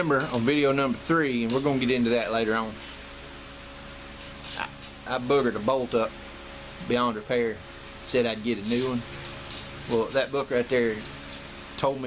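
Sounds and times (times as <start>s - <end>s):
fan running: 0.0s - 12.0s.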